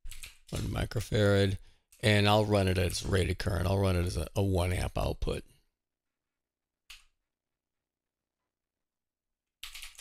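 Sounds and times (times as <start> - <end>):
person speaking: 0.5 - 5.6.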